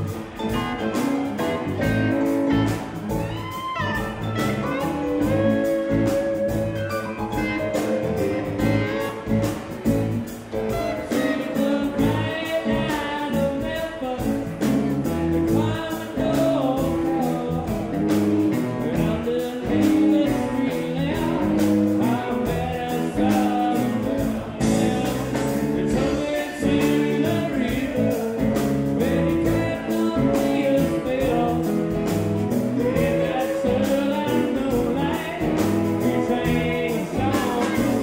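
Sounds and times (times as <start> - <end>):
bass guitar: 0.0 - 38.0
drum kit beat: 0.0 - 38.0
electric guitars: 0.0 - 38.0
man singing into microphone: 10.7 - 38.0.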